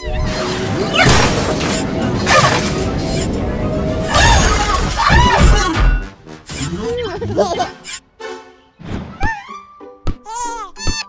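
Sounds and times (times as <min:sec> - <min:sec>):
cartoon background music: 0:02.2 - 0:11.0.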